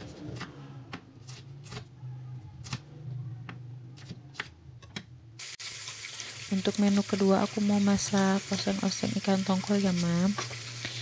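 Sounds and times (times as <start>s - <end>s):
fish sizzling in oil: 5.4s - 11.0s.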